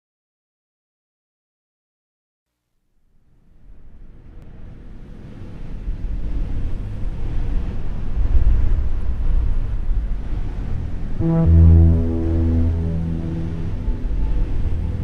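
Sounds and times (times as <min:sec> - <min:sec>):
low rumbling noise: 0:10.8 - 0:15.0.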